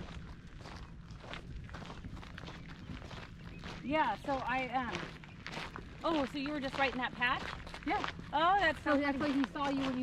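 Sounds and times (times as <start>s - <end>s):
footsteps walking: 0.0s - 10.0s
steady low rumble: 0.0s - 10.0s.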